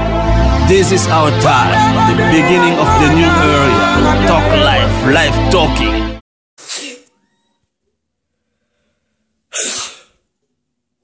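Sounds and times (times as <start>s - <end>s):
loud sneeze: 6.6s - 7.1s, 9.5s - 10.2s.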